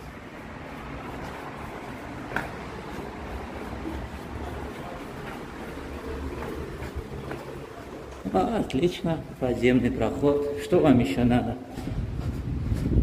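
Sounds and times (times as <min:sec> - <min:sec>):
road traffic rumble: 0:00.0 - 0:13.0.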